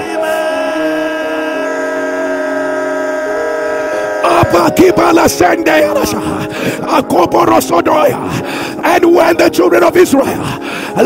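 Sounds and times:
sustained keyboard chords: 0.0s - 11.0s.

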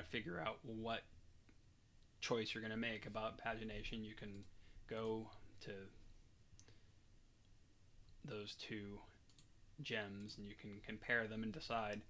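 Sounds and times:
computer mouse click: 4.2s - 5.2s, 9.2s - 9.5s.

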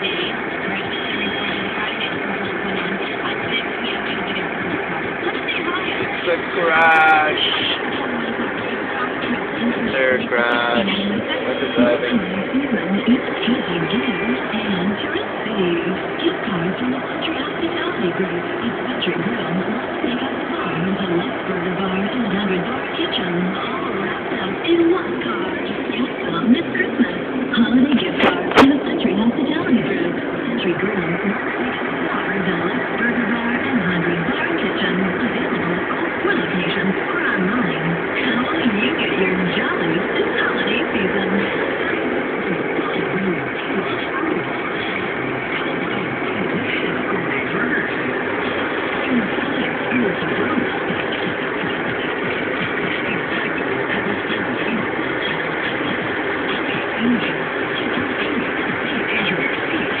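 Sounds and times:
car road and engine noise: 0.0s - 60.0s
muffled voices: 0.0s - 60.0s.

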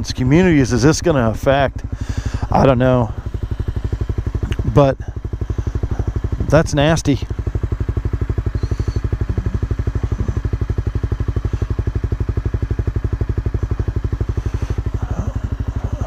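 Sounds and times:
motorcycle engine idling: 0.0s - 16.0s.

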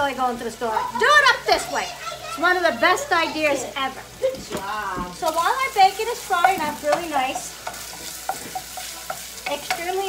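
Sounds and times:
bacon sizzling in a pot: 0.0s - 10.0s
spatula tapping and scraping pot: 4.5s - 10.0s.

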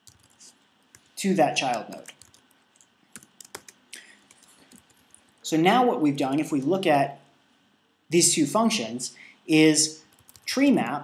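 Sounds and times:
computer keyboard typing: 0.0s - 5.4s, 10.1s - 10.5s.

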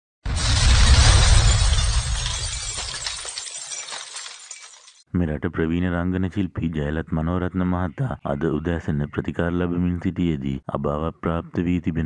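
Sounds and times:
sudden crash: 0.3s - 3.3s.

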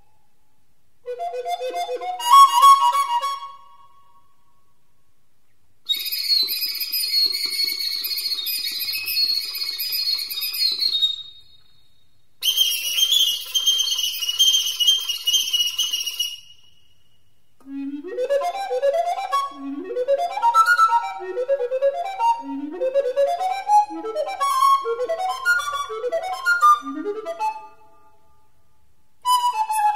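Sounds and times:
recorder playing: 1.1s - 3.6s, 17.6s - 28.0s, 29.2s - 29.9s
high fluttering recorder notes: 12.4s - 16.7s.

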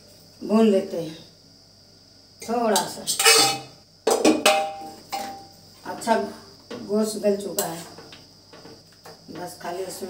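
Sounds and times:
metal spoon scraping pan: 3.1s - 3.7s, 4.5s - 5.5s.

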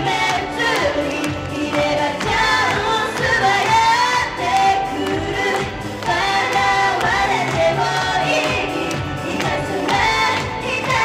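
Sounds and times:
amplified backing music: 0.0s - 11.0s
female group singing pop: 0.0s - 11.0s.

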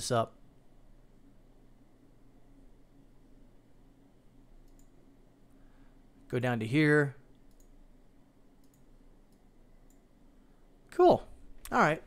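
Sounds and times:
computer mouse clicks: 4.6s - 5.0s, 7.4s - 7.8s, 8.6s - 10.1s.

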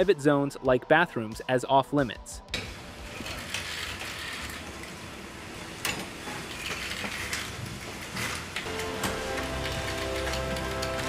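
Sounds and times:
low mechanical rattle: 2.6s - 11.0s.

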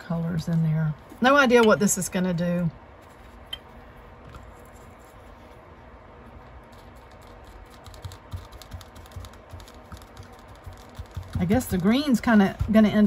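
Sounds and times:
paintbrush tapping on paper: 7.7s - 13.0s.

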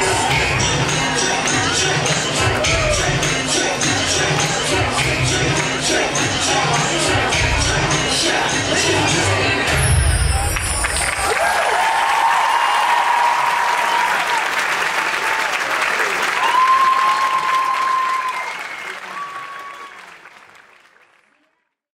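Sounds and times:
high cheers: 0.0s - 3.4s, 10.3s - 20.3s
audience applauding: 10.4s - 21.8s.

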